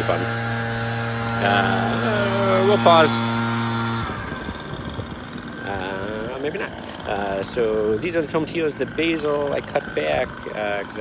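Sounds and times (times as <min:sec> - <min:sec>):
lawn mower engine humming: 0:00.0 - 0:11.0.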